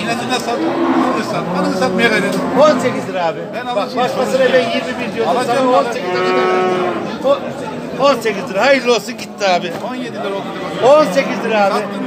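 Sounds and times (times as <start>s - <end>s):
cow mooing: 0.5s - 3.1s, 6.0s - 7.2s, 10.7s - 12.0s.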